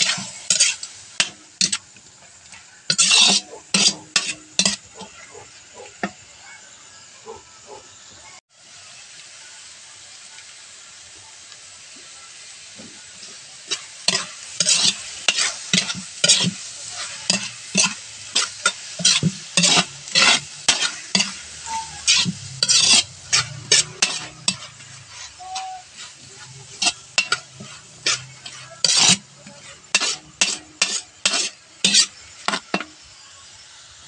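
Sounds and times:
metal spatula scraping a pan: 0.0s - 6.2s, 13.2s - 33.2s
vegetables sizzling in a wok: 0.0s - 34.0s.

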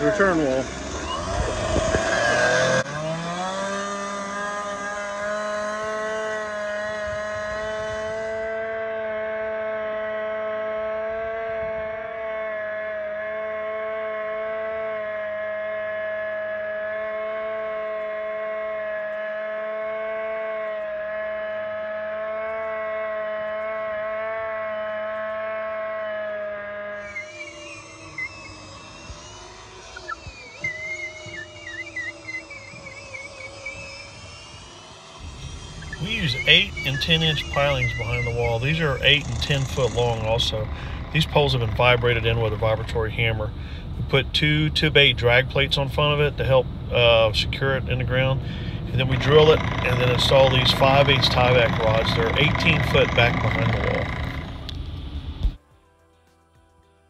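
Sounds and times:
chainsaw cutting wood: 0.0s - 44.1s, 48.4s - 55.6s.

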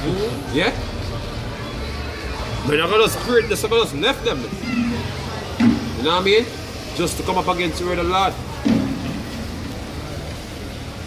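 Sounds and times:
low rumble with hiss: 0.0s - 11.0s.

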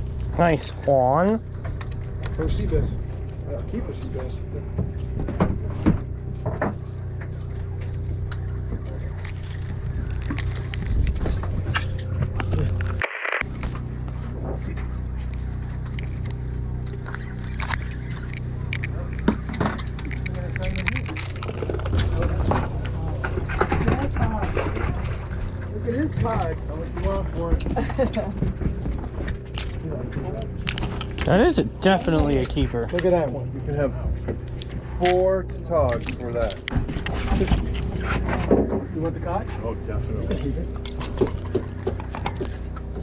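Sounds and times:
boat engine idling: 0.0s - 43.0s
people talking: 0.4s - 1.4s, 2.4s - 4.8s, 20.0s - 28.4s, 31.2s - 34.3s, 34.9s - 36.7s, 38.8s - 40.7s.

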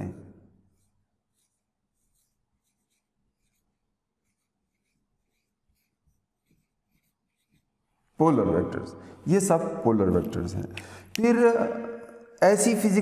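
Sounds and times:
marker squeaking on whiteboard: 0.6s - 7.8s.

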